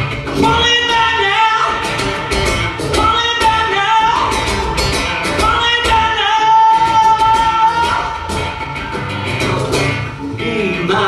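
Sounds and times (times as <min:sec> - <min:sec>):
strummed acoustic guitar: 0:00.0 - 0:11.0
man singing: 0:00.3 - 0:08.4, 0:09.3 - 0:11.0.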